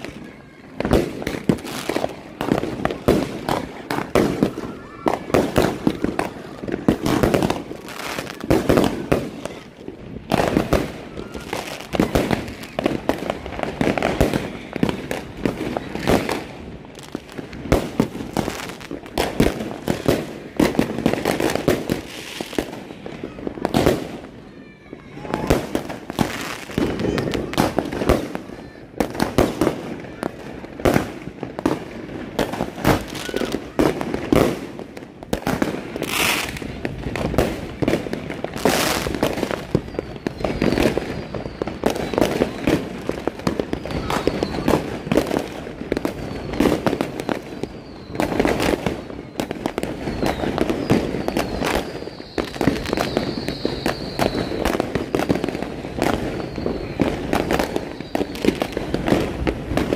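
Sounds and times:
fireworks and firecrackers banging: 0:00.0 - 0:59.9.

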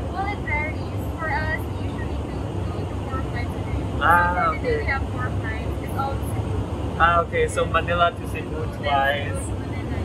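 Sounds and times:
woman speaking softly: 0:00.0 - 0:06.6, 0:08.7 - 0:10.0
airplane cabin rumble: 0:00.0 - 0:10.0.

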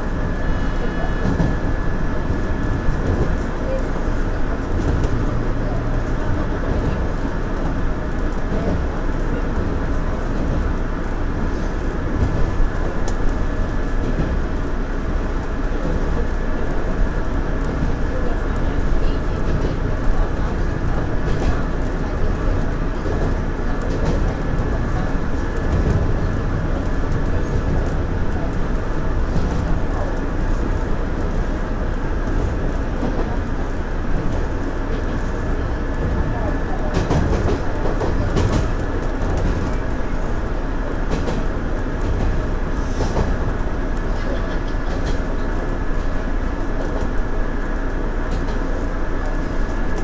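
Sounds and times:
train wheels rumbling on rails: 0:00.0 - 0:50.0
wheels clicking over rail joints: 0:02.3 - 0:50.0.

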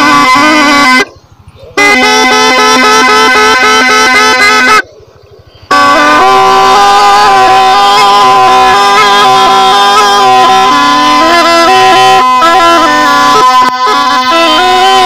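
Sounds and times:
reedy pipe melody over drone: 0:00.0 - 0:15.0.

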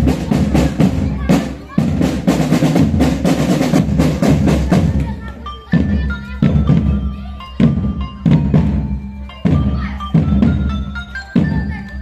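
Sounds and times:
heavy bass drum strokes: 0:00.0 - 0:05.1
high held melody line: 0:00.0 - 0:12.0.

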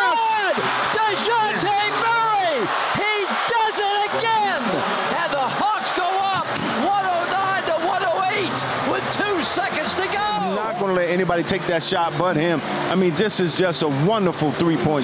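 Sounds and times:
crowd yelling and cheering: 0:00.0 - 0:15.0.

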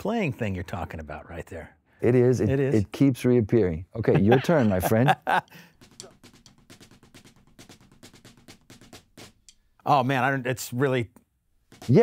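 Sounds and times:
drumsticks on a practice pad: 0:05.7 - 0:09.8, 0:11.6 - 0:12.0.

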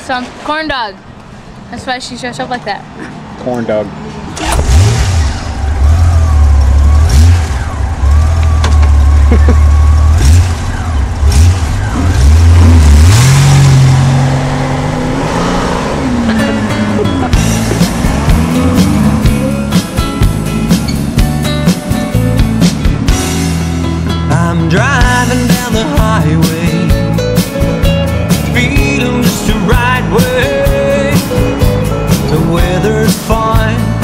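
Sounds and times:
motorcycle engine rumbling: 0:01.0 - 0:34.0
rock music: 0:15.9 - 0:34.0.

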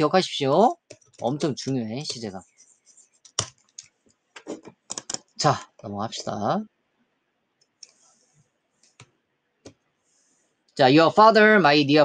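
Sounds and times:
computer mouse clicks: 0:03.2 - 0:05.3, 0:07.6 - 0:08.0, 0:08.8 - 0:09.8.

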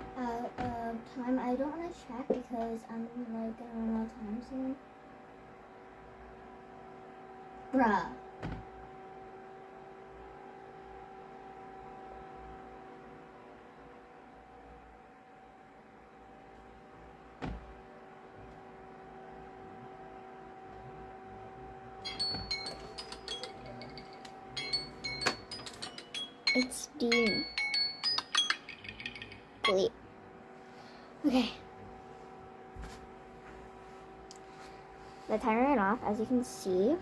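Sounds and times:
phone timer alarm chiming: 0:22.0 - 0:29.8.

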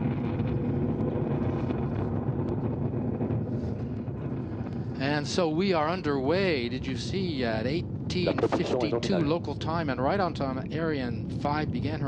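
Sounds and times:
rocket engines rumbling: 0:07.6 - 0:09.6.

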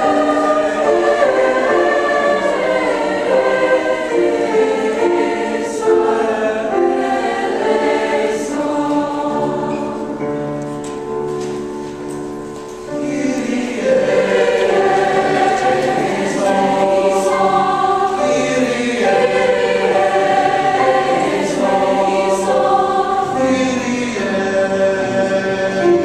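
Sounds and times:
mixed-voice choir singing: 0:00.0 - 0:11.3, 0:12.8 - 0:26.0.

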